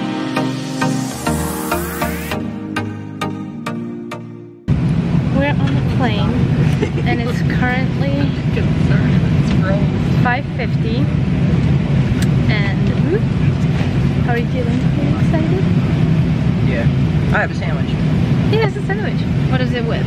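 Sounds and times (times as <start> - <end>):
electronic music: 0.0 - 4.7
airliner cabin rumble: 4.7 - 20.0
passengers chattering: 5.4 - 11.0.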